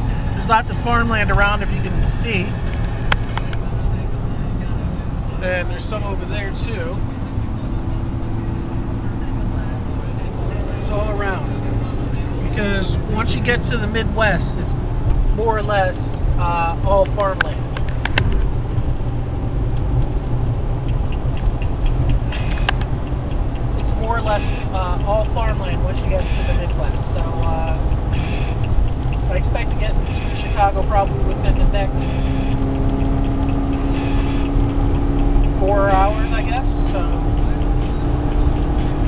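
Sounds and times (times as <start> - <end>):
car cabin road rumble: 0.0 - 39.0
sharp click: 17.4 - 18.5.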